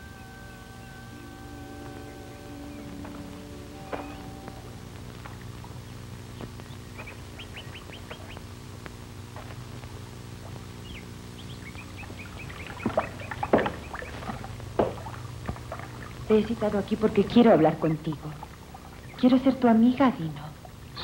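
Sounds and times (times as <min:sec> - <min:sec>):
birds chirping: 0:00.0 - 0:21.0
steady low hum: 0:00.0 - 0:21.0.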